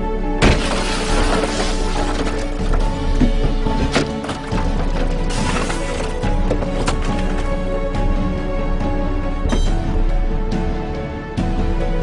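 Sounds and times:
background music: 0.0s - 12.0s
glass shattering: 0.4s - 2.8s
metal bar striking window: 9.5s - 9.9s.

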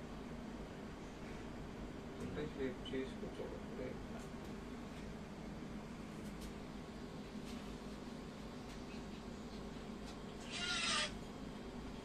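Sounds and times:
aquarium filters humming and trickling: 0.0s - 12.0s
brief animal call: 10.4s - 11.2s.

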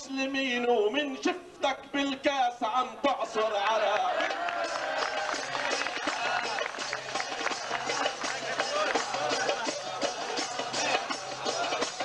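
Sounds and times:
crowd voices: 3.2s - 12.0s
tambourine beaten with jingles: 4.6s - 12.0s.

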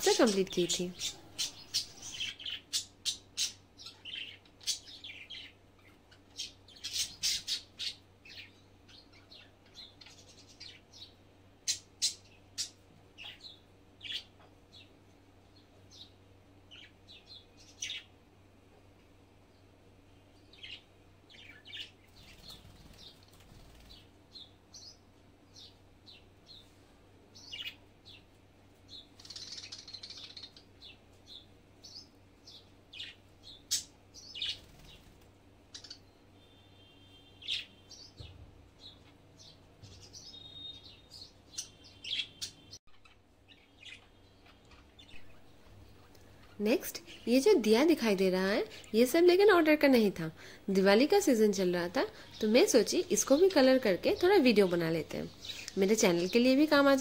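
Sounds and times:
birds chirping: 0.0s - 18.2s, 19.4s - 57.0s.

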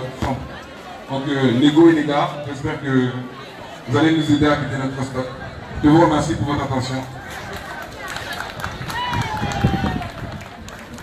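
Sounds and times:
crowd applause: 7.2s - 11.0s.

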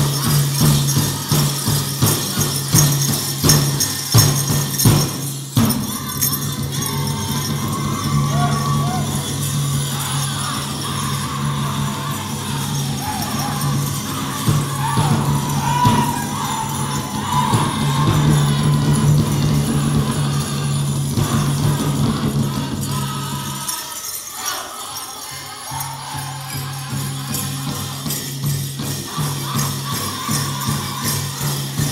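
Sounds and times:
bells jingling: 0.0s - 31.9s
drum group singing and drumming: 0.0s - 31.9s.

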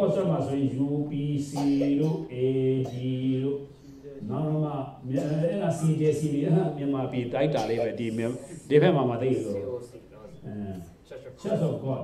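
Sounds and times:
man chanting syllables: 0.0s - 9.7s.

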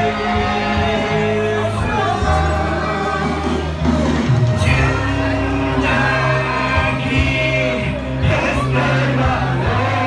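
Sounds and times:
backing music: 0.0s - 10.0s
man singing into microphone: 4.6s - 10.0s.

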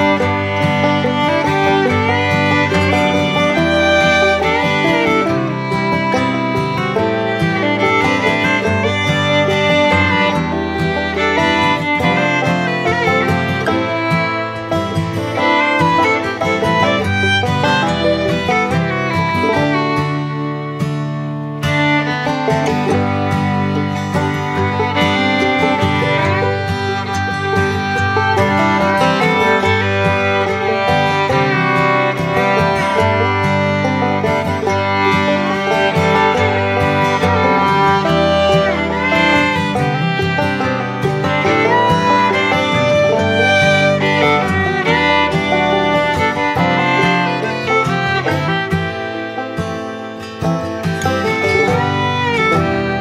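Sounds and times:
bluegrass fiddle and guitar music: 0.0s - 53.0s.

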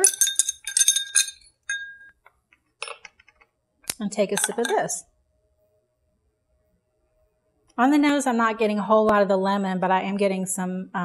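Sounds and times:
spoon clinking against glass: 0.0s - 2.2s, 4.3s - 4.9s.

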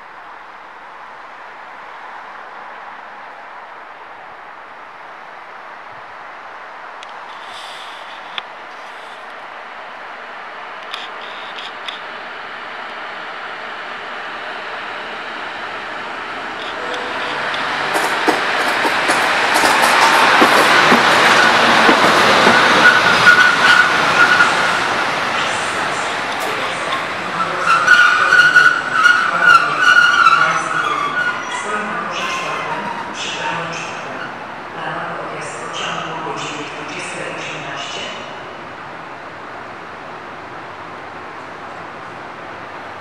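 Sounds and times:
electric locomotive rolling past: 1.1s - 43.0s
high wheel squeal: 22.4s - 24.7s, 27.4s - 33.2s.

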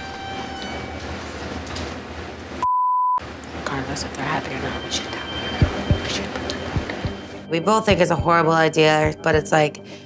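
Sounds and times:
censor bleep: 2.6s - 3.2s, 4.8s - 7.2s.

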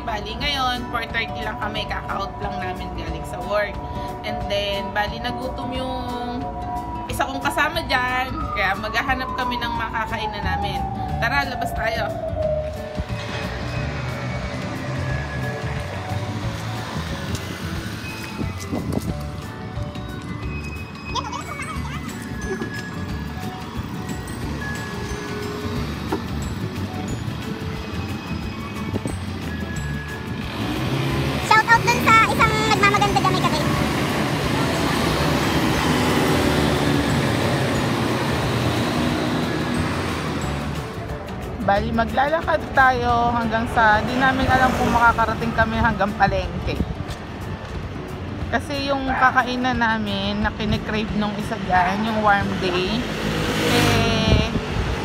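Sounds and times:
background music: 0.0s - 55.0s
cars and scooters passing: 0.0s - 55.0s.

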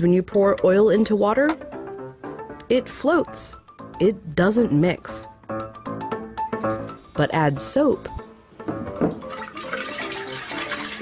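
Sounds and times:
liquid sloshing in a glass flask: 8.9s - 11.0s.

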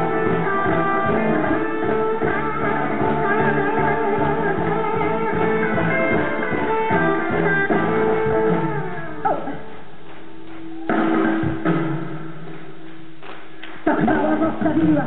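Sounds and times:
live rock band playing: 0.0s - 9.8s, 10.8s - 12.6s
electric guitar: 0.0s - 15.0s.

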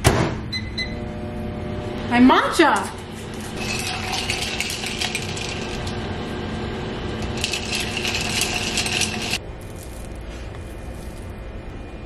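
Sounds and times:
utensil clinking in glass jar: 3.6s - 5.9s, 7.2s - 10.1s.

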